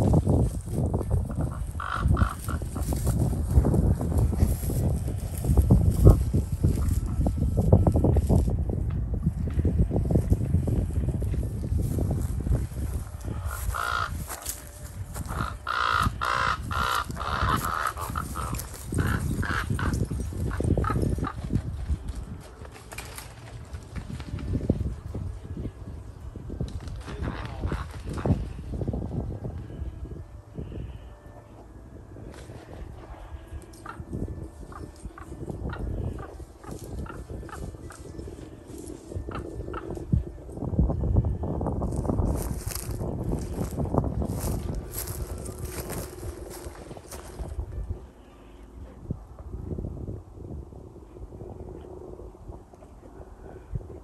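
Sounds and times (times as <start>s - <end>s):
low microphone rumble: 0.0s - 22.6s, 23.6s - 54.0s
ravens calling harshly: 1.4s - 2.9s, 13.4s - 14.5s, 15.2s - 21.4s.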